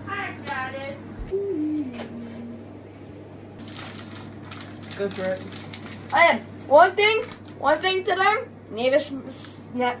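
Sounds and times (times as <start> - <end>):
steady low hum: 0.0 - 10.0
child humming: 1.3 - 2.6.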